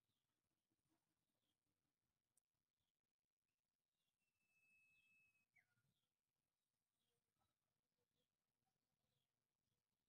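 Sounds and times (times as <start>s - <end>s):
distant bird whistling: 4.4s - 5.8s.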